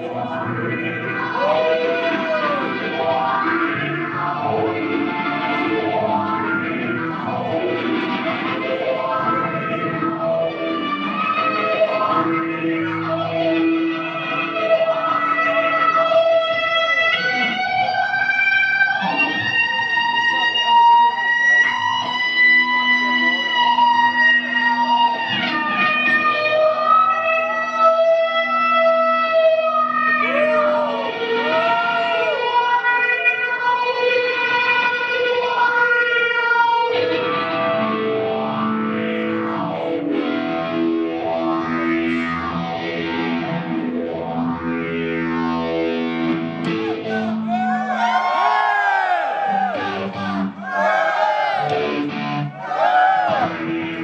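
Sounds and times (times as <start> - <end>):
bowed electric guitar: 0.0 - 54.0.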